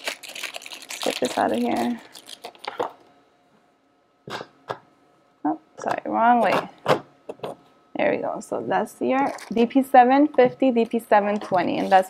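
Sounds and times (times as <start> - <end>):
plastic wrapping crinkling: 0.0 - 3.0, 9.2 - 9.6.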